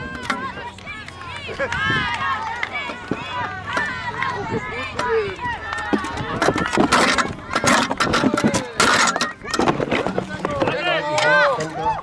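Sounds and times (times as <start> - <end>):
raised voices calling out: 0.0 - 12.0.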